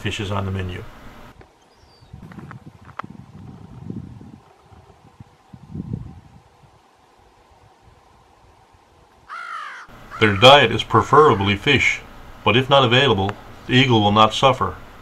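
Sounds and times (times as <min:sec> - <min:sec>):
crow cawing: 0:09.3 - 0:11.6.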